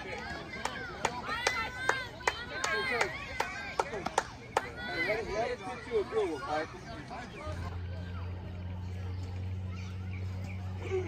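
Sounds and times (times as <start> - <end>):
girls chanting and shouting: 0.0 - 7.0
sharp hand claps: 0.5 - 4.8.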